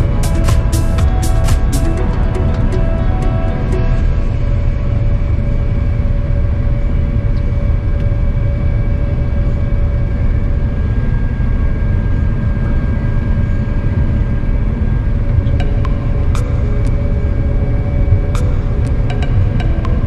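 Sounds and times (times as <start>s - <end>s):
thin steady whine: 0.0s - 20.0s.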